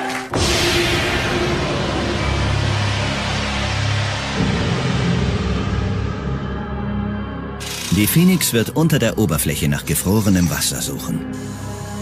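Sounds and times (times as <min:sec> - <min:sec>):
dramatic music with low notes: 0:00.2 - 0:12.0.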